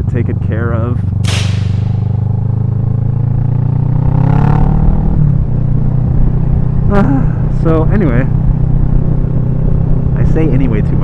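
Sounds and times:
motorcycle engine accelerating: 0:01.2 - 0:06.8.

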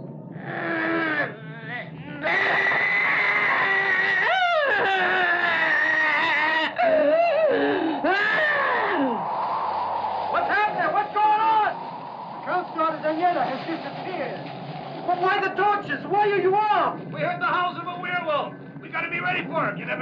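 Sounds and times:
werewolf howls: 0:02.1 - 0:09.4.

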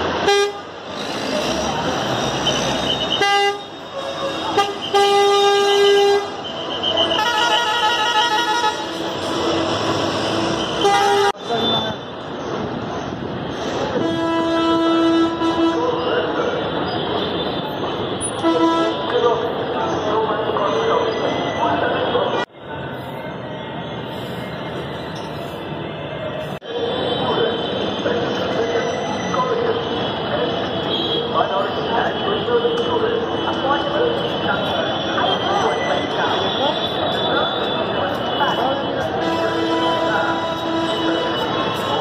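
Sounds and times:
traffic noise: 0:00.0 - 0:42.0
vehicle horns honking: 0:00.2 - 0:00.8, 0:02.3 - 0:09.8, 0:10.5 - 0:12.0, 0:13.9 - 0:16.0, 0:17.0 - 0:19.1, 0:34.3 - 0:42.0
crowd chatter: 0:15.5 - 0:42.0.

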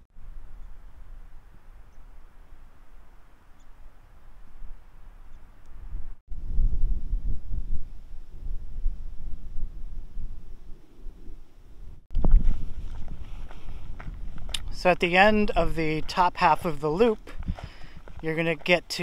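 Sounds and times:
wind buffeting microphone: 0:00.2 - 0:19.0.

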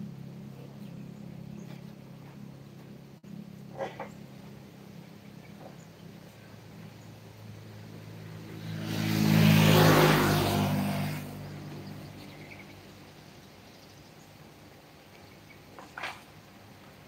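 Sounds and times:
motor vehicle passing by: 0:00.0 - 0:17.0.

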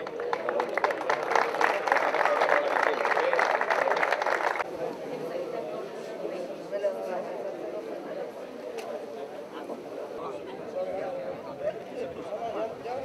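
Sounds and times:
crowd applauding: 0:00.0 - 0:04.7
people's voices: 0:00.0 - 0:13.0.

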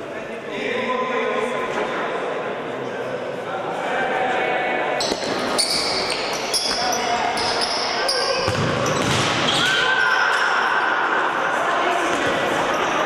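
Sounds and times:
players' voices echoing: 0:00.0 - 0:13.0
ball bouncing: 0:05.0 - 0:09.7
shoes squeaking on floor: 0:05.0 - 0:09.9.

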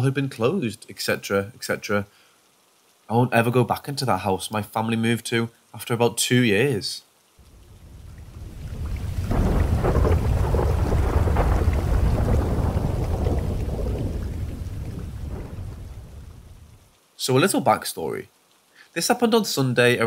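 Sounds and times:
steady rain: 0:00.0 - 0:20.0
thunder rumbling: 0:07.4 - 0:16.9.

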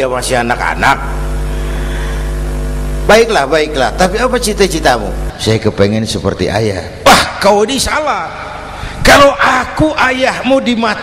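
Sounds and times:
hum of held tones over low drone: 0:00.0 - 0:05.6.

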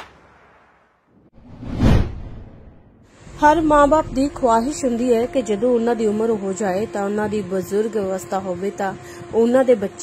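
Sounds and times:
whoosh sound effect: 0:01.4 - 0:02.9.

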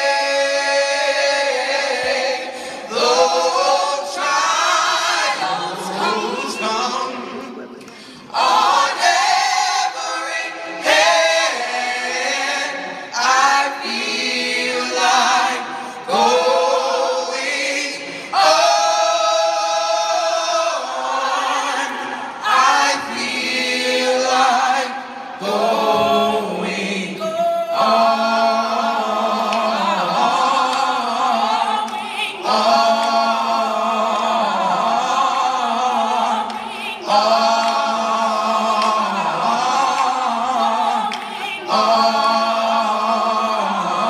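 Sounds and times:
gospel choir singing in harmony: 0:00.0 - 0:44.0.

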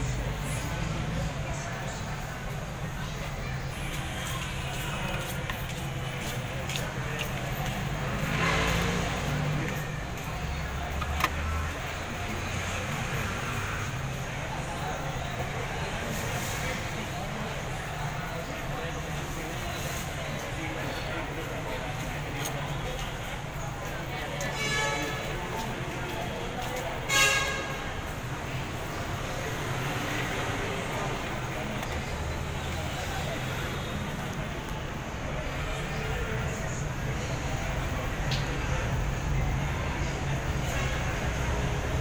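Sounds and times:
indistinct background voices: 0:00.0 - 0:42.0.

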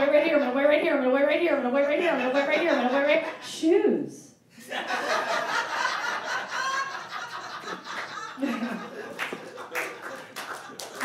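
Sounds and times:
audience laughing: 0:02.0 - 0:03.5, 0:04.6 - 0:11.0
scattered clapping: 0:07.6 - 0:11.0.

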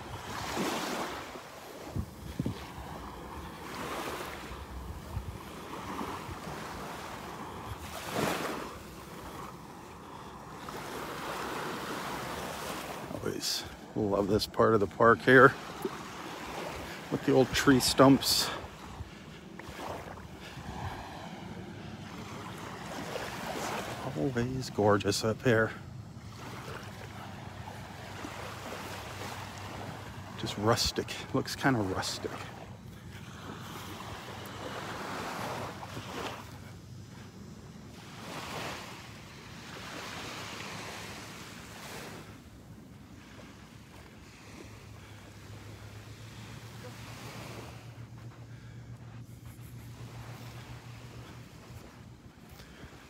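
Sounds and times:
gentle surf on shore: 0:00.0 - 0:53.0
wind noise on microphone: 0:01.8 - 0:03.0
wind on microphone: 0:01.8 - 0:03.1, 0:04.6 - 0:06.6.

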